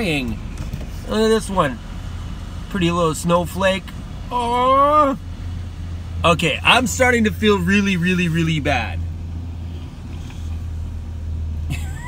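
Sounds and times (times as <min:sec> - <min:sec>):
van engine idling: 0:00.0 - 0:12.0.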